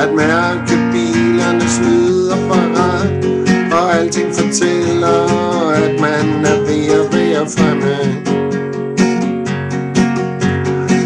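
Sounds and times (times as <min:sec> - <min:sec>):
man singing: 0:00.0 - 0:08.4
strummed acoustic guitar: 0:00.0 - 0:11.0.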